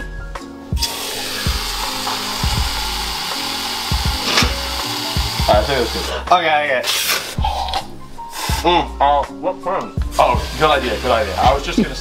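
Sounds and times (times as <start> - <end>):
background music with beat: 0.0 - 12.0
aerosol whipped cream hissing: 0.8 - 6.2, 6.8 - 8.8, 10.2 - 12.0.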